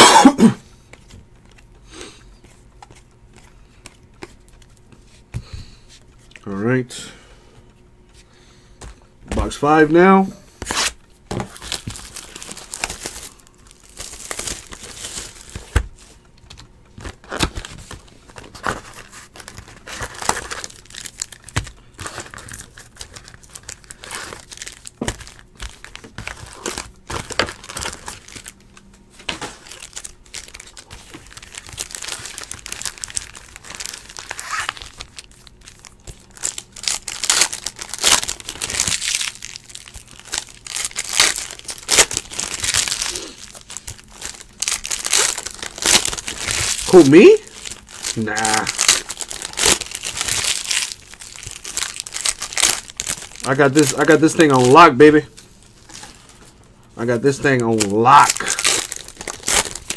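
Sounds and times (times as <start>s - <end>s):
foil wrappers crinkling and tearing: 9.4s - 59.9s.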